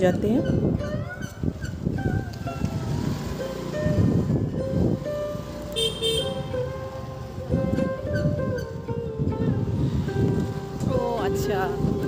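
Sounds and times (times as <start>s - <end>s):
motorbike engine: 0.0s - 12.0s
road noise: 0.0s - 12.0s
background music: 2.2s - 12.0s
short horn beeps: 5.7s - 6.6s.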